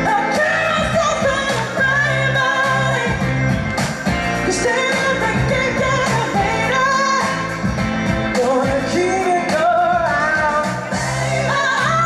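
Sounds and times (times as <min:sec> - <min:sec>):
woman singing into microphone: 0:00.0 - 0:03.4, 0:04.4 - 0:07.6, 0:08.8 - 0:12.0
bass guitar: 0:00.0 - 0:12.0.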